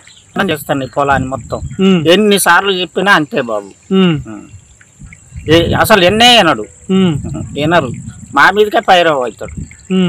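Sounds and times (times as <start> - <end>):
crickets droning: 0.0 - 10.0
man talking: 0.4 - 4.6, 5.4 - 10.0.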